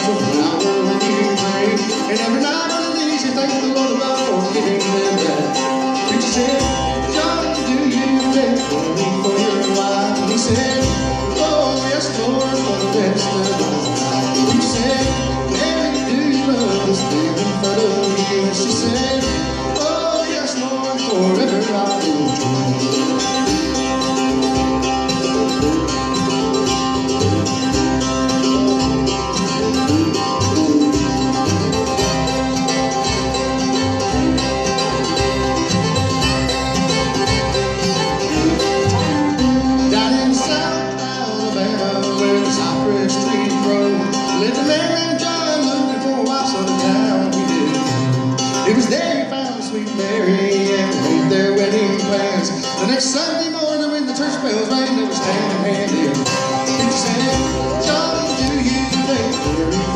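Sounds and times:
acoustic guitar: 0.0s - 59.9s
banjo: 0.0s - 59.9s
fiddle: 0.0s - 59.9s
mandolin: 0.0s - 59.9s
upright bass: 0.0s - 59.9s.

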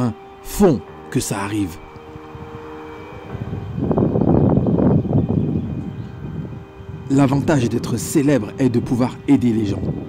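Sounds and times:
wind buffeting microphone: 0.2s - 10.0s.

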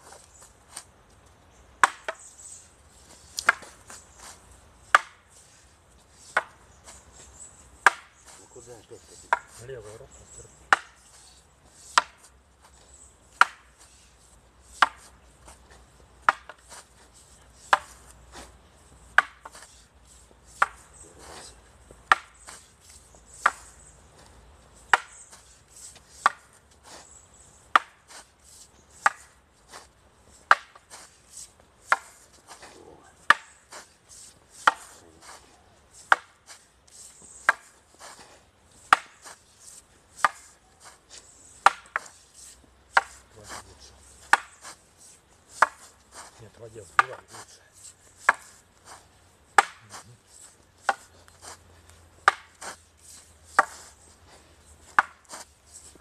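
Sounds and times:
wooden staffs clacking: 1.7s - 2.2s, 2.9s - 56.0s.

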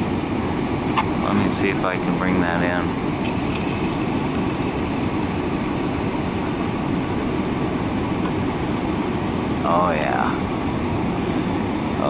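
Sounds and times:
cooling fans and machinery rumble: 0.0s - 12.0s
faint high whine: 0.0s - 12.0s.

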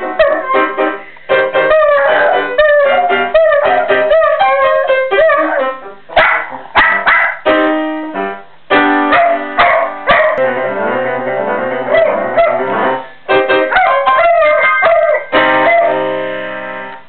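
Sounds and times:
piano chords: 0.0s - 17.0s
dog howling: 1.7s - 5.8s, 13.7s - 16.0s.

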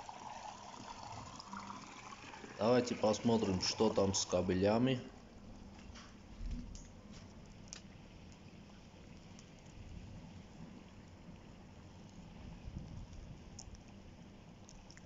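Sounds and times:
fire crackling with pops: 6.7s - 8.5s.

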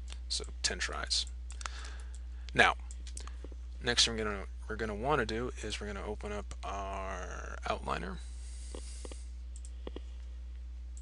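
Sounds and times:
low electrical hum: 0.0s - 11.0s
computer mouse clicks: 8.7s - 10.1s.

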